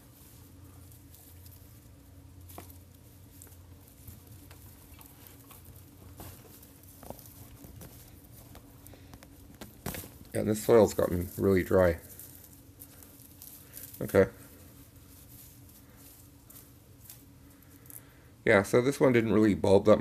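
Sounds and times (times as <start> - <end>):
dry leaves rustling: 0.0 - 20.0
steady low hum: 0.0 - 20.0.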